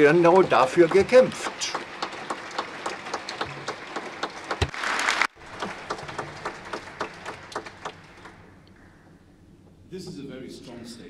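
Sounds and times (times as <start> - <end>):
audience applauding: 0.0 - 8.5.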